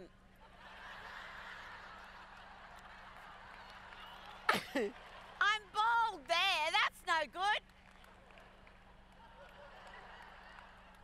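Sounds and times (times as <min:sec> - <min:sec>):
distant audience laughing: 0:00.5 - 0:05.1.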